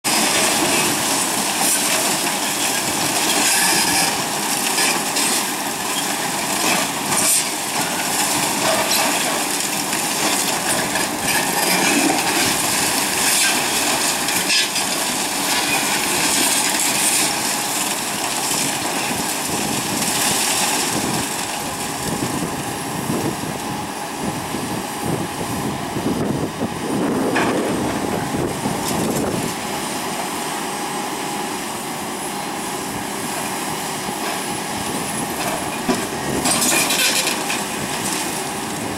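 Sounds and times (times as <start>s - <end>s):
diesel machines running: 0.1s - 38.9s.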